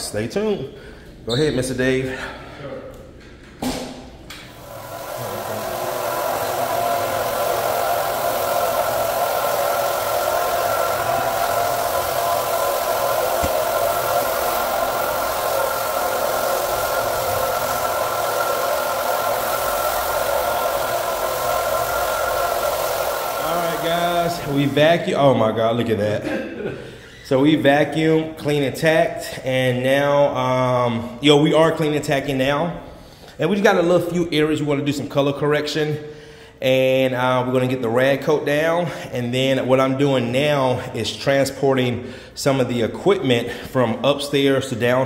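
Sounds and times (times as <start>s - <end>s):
floor buffer motor humming: 4.3s - 25.7s.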